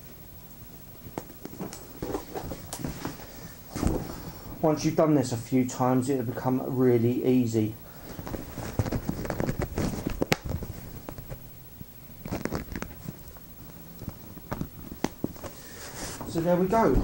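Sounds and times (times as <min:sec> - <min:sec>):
fabric rustling: 0:01.0 - 0:04.7, 0:07.9 - 0:11.5, 0:12.1 - 0:17.0.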